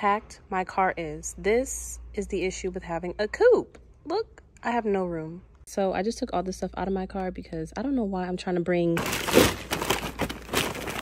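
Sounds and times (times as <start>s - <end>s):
shopping bag rustling and crinkling: 9.0s - 11.0s.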